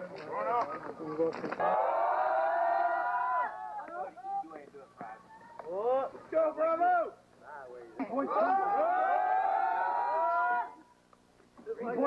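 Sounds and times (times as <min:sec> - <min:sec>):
men shouting together: 0:01.6 - 0:04.2, 0:08.2 - 0:10.9.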